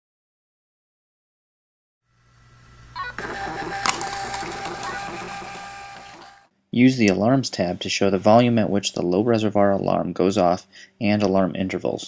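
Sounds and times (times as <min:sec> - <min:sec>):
thermal printer printing: 0:03.0 - 0:06.5
printer click: 0:03.2 - 0:06.4.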